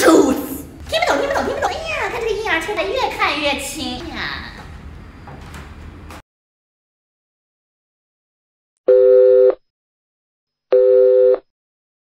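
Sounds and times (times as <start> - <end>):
telephone call tone beeps: 10.8 - 11.4.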